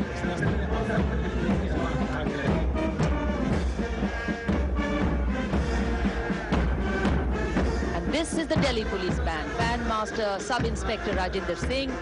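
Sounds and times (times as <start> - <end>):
brass band playing a march: 0.0 - 12.0.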